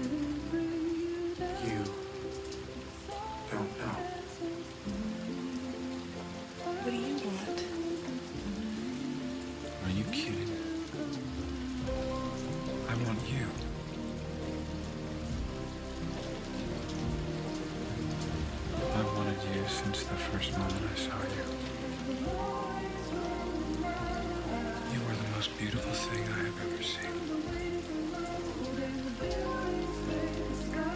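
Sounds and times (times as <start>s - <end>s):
soft sustained music notes: 0.0s - 30.9s
steady rain falling: 0.0s - 30.9s.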